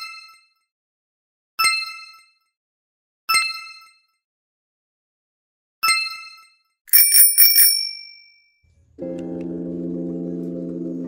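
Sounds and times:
bell ringing: 0:06.9 - 0:08.4
bright bell ding: 0:06.9 - 0:08.4.

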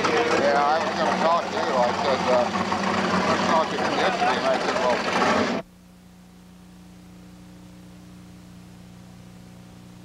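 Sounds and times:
men talking and laughing: 0:00.0 - 0:05.5
steady background noise: 0:00.0 - 0:06.4.

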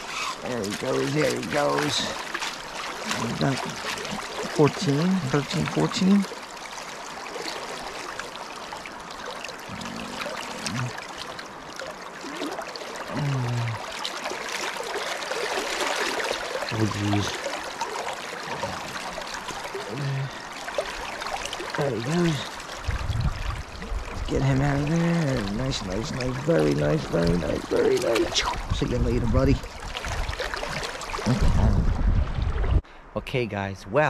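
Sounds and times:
creek water rushing and splashing: 0:00.0 - 0:32.9
man's voice: 0:24.3 - 0:29.6.

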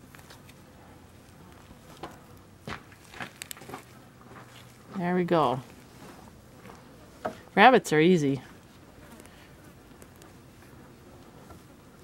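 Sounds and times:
soft crackles of skin peeling: 0:00.0 - 0:05.0, 0:05.6 - 0:07.1, 0:08.6 - 0:11.7.

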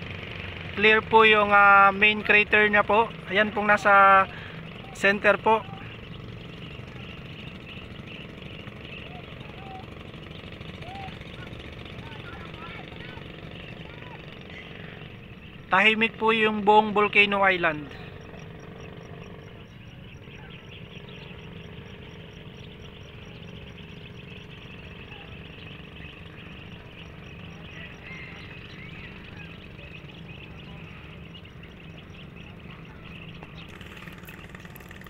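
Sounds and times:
low engine hum: 0:00.0 - 0:35.0
faint chirping: 0:01.9 - 0:35.0.

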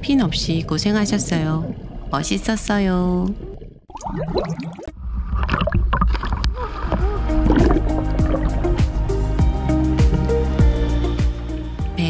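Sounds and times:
sea water sloshing and splashing: 0:00.2 - 0:08.8.

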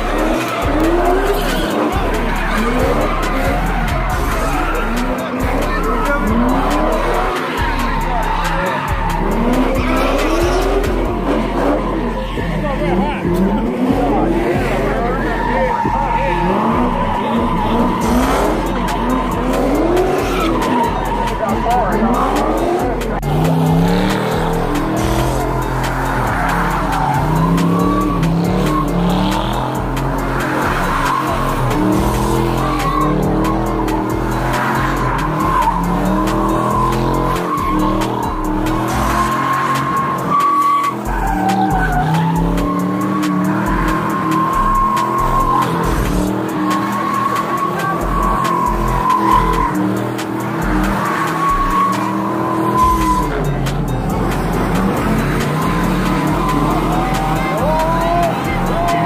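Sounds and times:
engine revving: 0:00.0 - 0:59.0
tyres squealing: 0:00.0 - 0:59.0.

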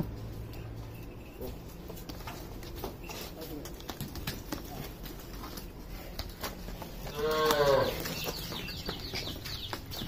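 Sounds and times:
cattle hooves on brick paving: 0:00.0 - 0:10.0.

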